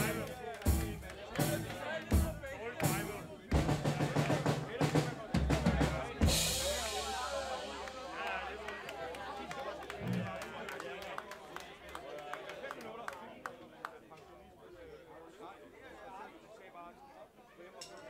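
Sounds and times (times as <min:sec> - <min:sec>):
rock drum kit hits: 0:00.0 - 0:08.5
voices from stage and audience: 0:00.0 - 0:18.0.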